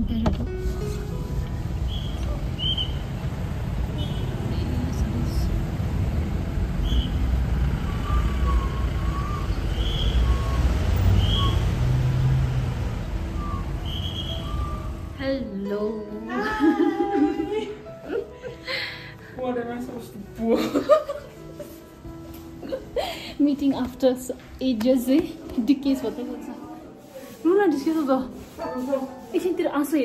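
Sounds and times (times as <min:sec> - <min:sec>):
idling and slow-moving cars: 0:00.6 - 0:15.2.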